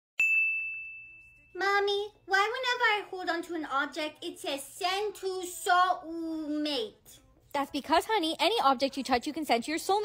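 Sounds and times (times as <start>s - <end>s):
high bell-like ding: 0.2s - 1.7s.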